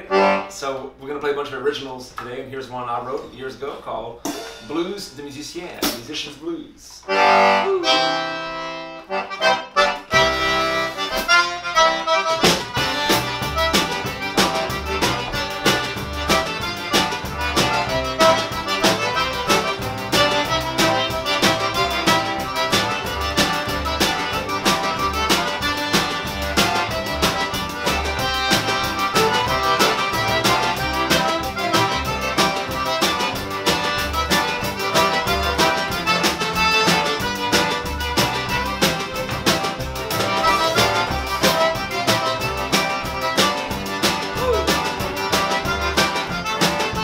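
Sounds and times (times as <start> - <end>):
button accordion: 0.0 - 0.9, 7.0 - 47.0
upright bass: 0.0 - 47.0
drum kit: 3.2 - 47.0
fiddle: 7.1 - 47.0
acoustic guitar: 7.3 - 47.0.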